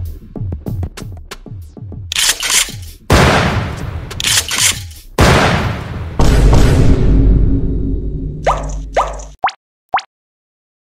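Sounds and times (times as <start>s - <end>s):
explosion rumble: 5.2s - 8.0s
rising plop sound effects: 8.5s - 10.1s.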